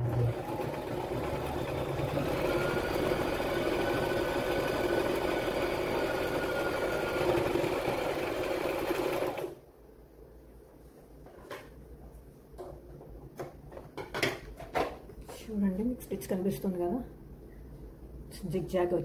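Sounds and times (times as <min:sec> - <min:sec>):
sewing machine running: 0:00.0 - 0:09.6.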